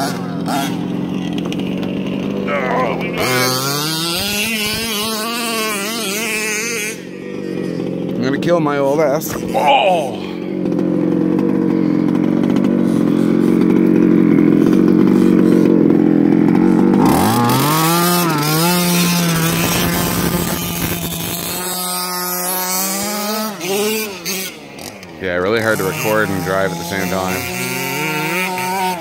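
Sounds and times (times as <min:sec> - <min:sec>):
small two-stroke engine revving: 0:00.0 - 0:29.0.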